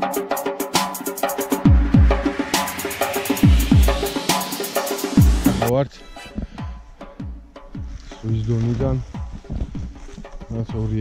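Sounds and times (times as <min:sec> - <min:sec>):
music with deep bass drum: 0:01.4 - 0:05.7, 0:06.4 - 0:11.0.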